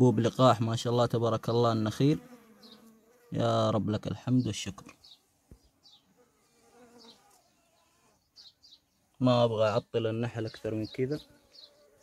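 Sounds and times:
honeybees buzzing: 0:00.0 - 0:03.8, 0:05.0 - 0:09.0, 0:10.2 - 0:12.0.

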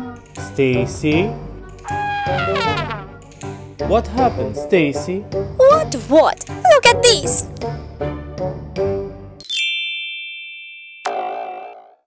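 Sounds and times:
children's background music: 0:00.0 - 0:09.7
bell-like ding: 0:09.5 - 0:11.5.

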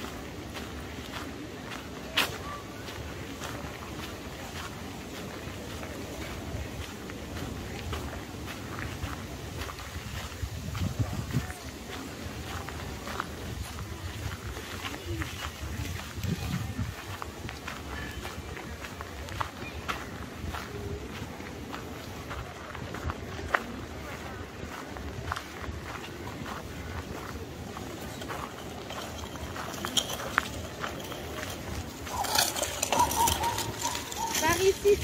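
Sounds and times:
footsteps on gravel: 0:00.0 - 0:35.0
passersby talking: 0:00.0 - 0:35.0.

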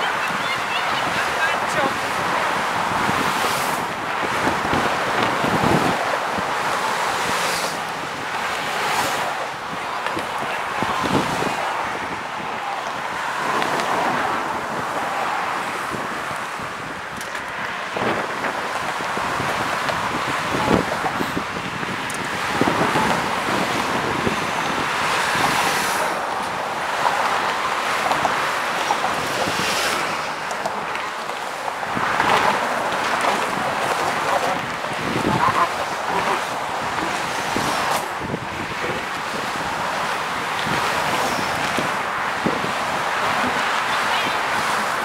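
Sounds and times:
road traffic passing: 0:00.0 - 0:45.0
wind on microphone: 0:00.0 - 0:45.0.

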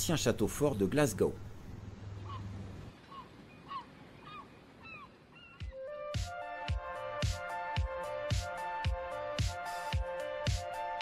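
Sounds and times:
bird calling: 0:02.1 - 0:06.4
music with low beats: 0:05.6 - 0:11.0.

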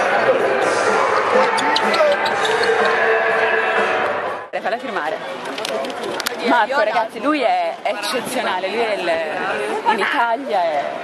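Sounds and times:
background music: 0:00.0 - 0:04.7
voices: 0:00.0 - 0:11.0.

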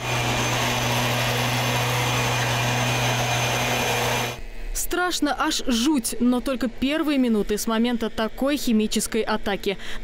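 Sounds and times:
blower hissing: 0:00.0 - 0:04.4
small engine humming: 0:00.0 - 0:04.4.

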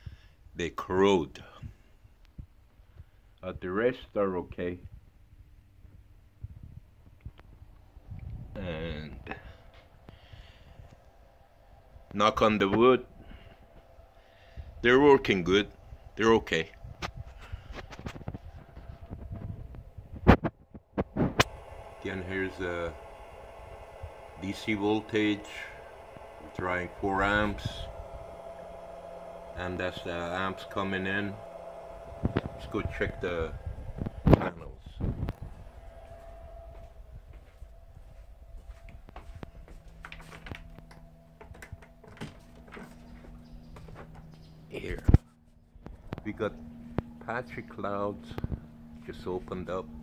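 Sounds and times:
faint low hum: 0:00.0 - 0:50.0
footsteps: 0:34.0 - 0:44.3.

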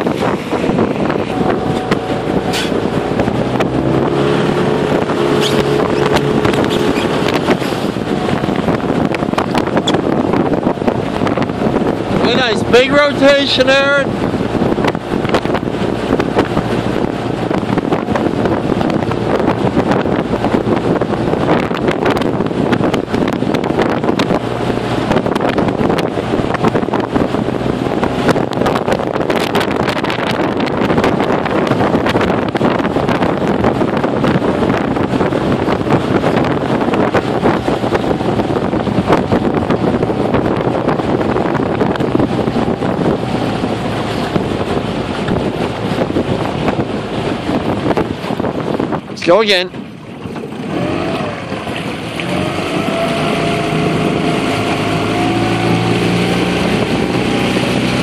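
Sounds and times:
water rushing along boat hull: 0:00.0 - 0:58.0
wind noise on microphone: 0:00.0 - 0:58.0.

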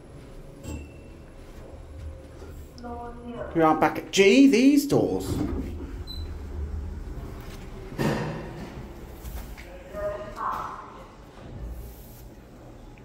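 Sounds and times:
lift doors shutting: 0:05.0 - 0:09.5.

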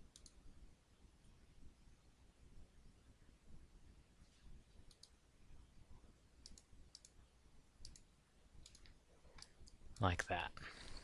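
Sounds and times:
computer mouse clicks: 0:00.0 - 0:00.4, 0:04.8 - 0:05.2, 0:06.4 - 0:07.2, 0:07.8 - 0:10.1.

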